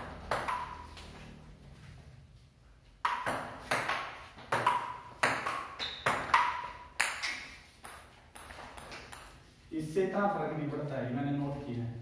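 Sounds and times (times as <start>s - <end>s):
ball bouncing on wooden table: 0.0s - 1.1s, 3.0s - 9.3s
ball clicking off paddles: 3.0s - 9.4s.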